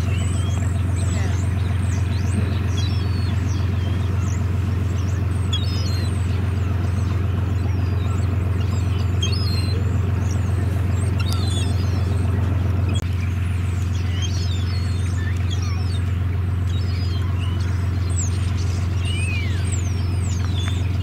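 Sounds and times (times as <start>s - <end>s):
gulls calling: 0.0s - 21.0s
steady low rumble: 0.0s - 21.0s.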